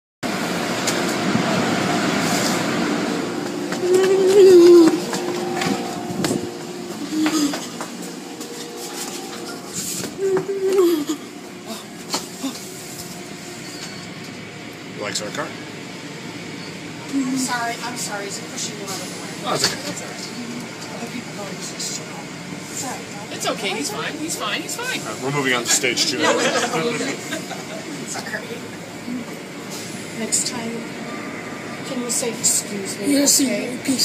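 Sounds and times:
steady background noise: 0:00.2 - 0:34.0
indistinct voices: 0:02.8 - 0:13.0.

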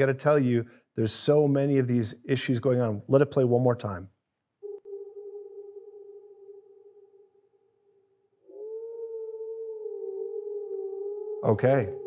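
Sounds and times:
held pitched tone: 0:04.6 - 0:12.0
wavering tone: 0:04.6 - 0:12.0.

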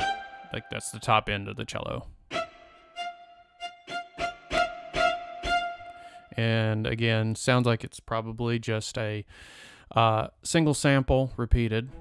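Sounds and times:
cello spiccato notes: 0:00.0 - 0:01.7, 0:02.3 - 0:06.4.

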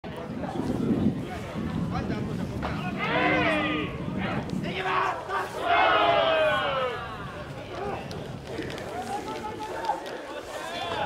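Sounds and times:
team shouting a cheer: 0:04.7 - 0:07.4.

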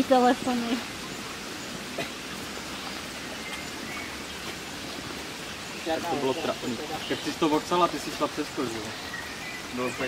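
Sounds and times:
stream flowing over stones: 0:00.0 - 0:10.0.

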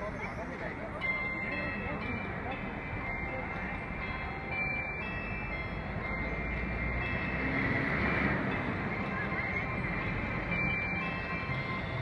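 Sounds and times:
clock tower chimes ringing: 0:00.0 - 0:12.0.

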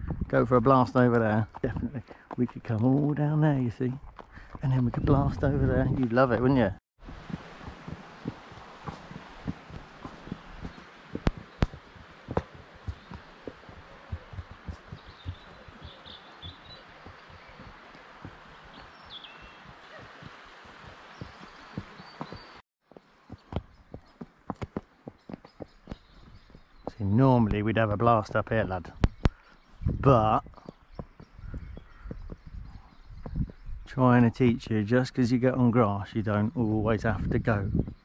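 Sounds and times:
horse hooves on dirt: 0:00.0 - 0:34.6
faint bird chirps: 0:12.8 - 0:17.7, 0:28.9 - 0:34.2.

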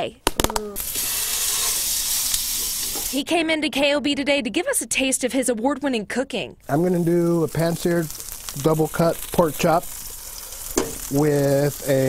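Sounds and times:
pork chop sizzling in a frying pan: 0:00.8 - 0:03.2, 0:06.6 - 0:12.0.

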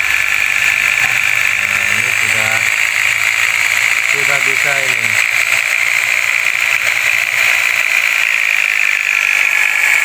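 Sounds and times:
power tool whirring: 0:00.0 - 0:10.0.

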